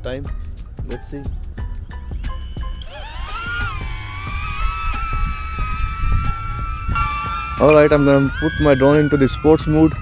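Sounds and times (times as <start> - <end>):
drone propellers whining: 2.6 - 10.0
wind rumble on microphone: 2.9 - 10.0.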